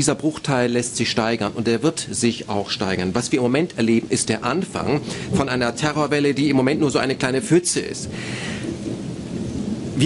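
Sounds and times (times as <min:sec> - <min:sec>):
steady rushing noise: 0:00.0 - 0:10.0
low rumble: 0:02.8 - 0:10.0.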